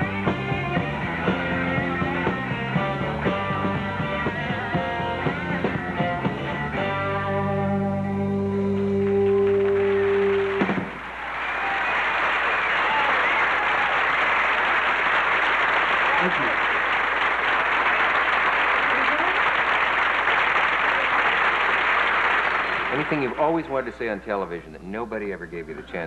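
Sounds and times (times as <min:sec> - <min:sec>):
audience applauding and cheering: 0:08.7 - 0:24.0.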